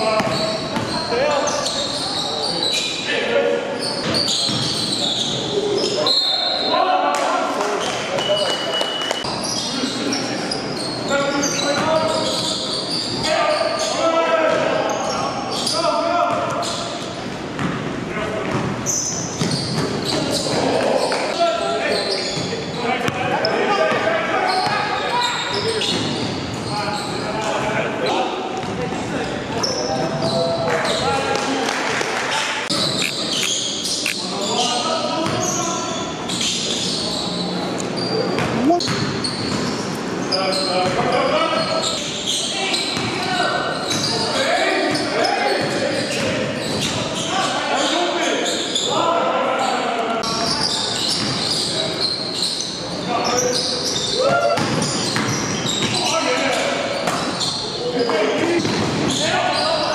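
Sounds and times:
basketball bouncing on court floor: 0.2 - 1.0, 4.1 - 4.8, 19.4 - 20.7, 38.4 - 39.7, 43.0 - 43.2, 51.2 - 51.4, 54.2 - 56.0, 58.6 - 59.2.

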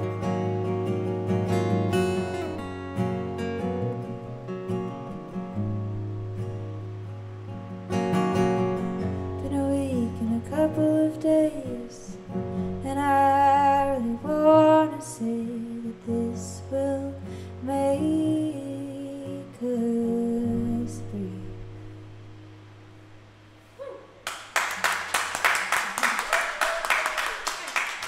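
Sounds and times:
acoustic guitars playing: 0.0 - 23.8
woman singing: 9.4 - 21.7
audience applause: 24.2 - 28.0.

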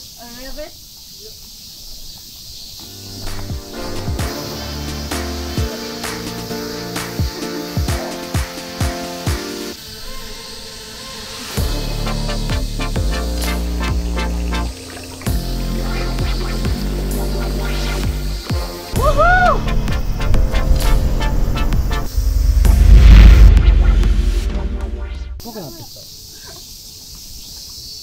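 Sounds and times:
electronic music with steady beat: 3.2 - 9.7, 11.6 - 25.4
heavy bass line: 11.6 - 14.7, 19.0 - 25.4.

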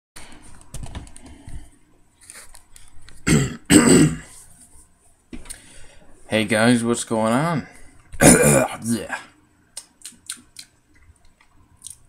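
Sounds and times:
man coughing: 3.3 - 4.3, 8.2 - 8.9.

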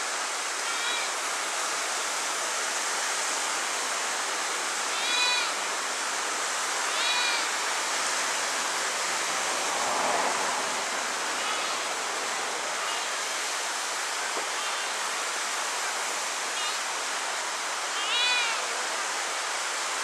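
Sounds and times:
waves washing over rocks: 0.0 - 20.0.

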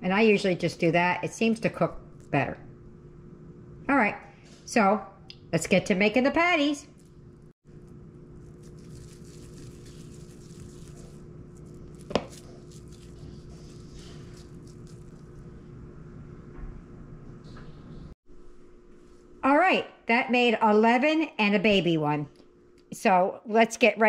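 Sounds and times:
constant low hum: 0.0 - 24.0
wet hands squishing ground beef: 8.2 - 15.4.

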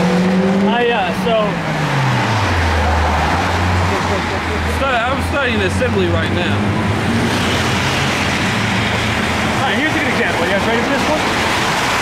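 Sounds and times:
road noise: 0.0 - 12.0
vehicle engine humming: 0.0 - 12.0.

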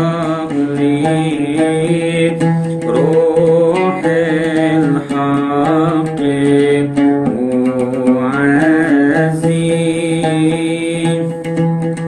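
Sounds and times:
man chanting: 0.0 - 11.5
oud plucked: 0.0 - 12.0.

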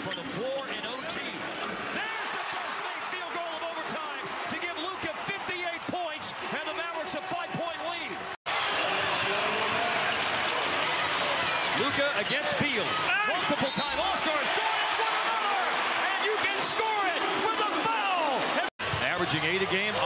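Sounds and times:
arena crowd noise: 0.0 - 20.0.

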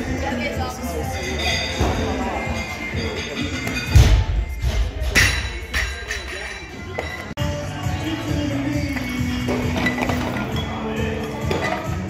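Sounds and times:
background music: 0.0 - 12.0
weight plates clinking: 1.0 - 7.4.

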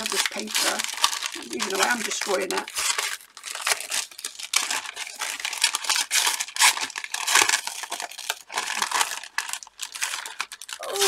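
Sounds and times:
tissue paper crinkling and tearing: 0.0 - 11.0.

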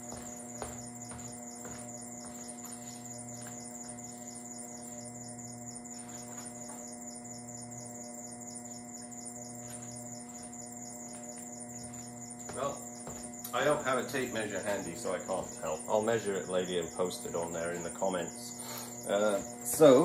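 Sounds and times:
electrical hum: 0.0 - 20.0.

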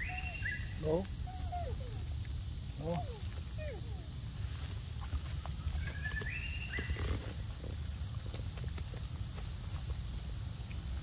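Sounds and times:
whistled bird call: 0.0 - 1.7, 5.8 - 7.1.

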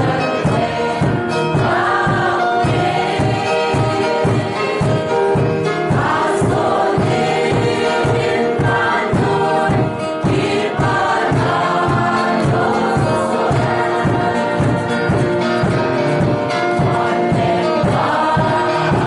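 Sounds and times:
choir singing a hymn: 0.0 - 19.0
steady beat accompaniment: 0.0 - 19.0.

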